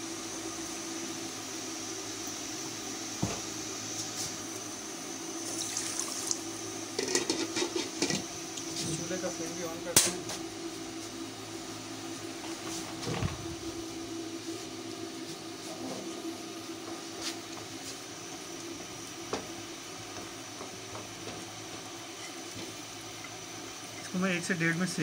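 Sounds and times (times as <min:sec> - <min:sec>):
nuts frying in ghee: 0:00.0 - 0:10.6, 0:16.6 - 0:25.0
gas burner hiss: 0:00.0 - 0:25.0.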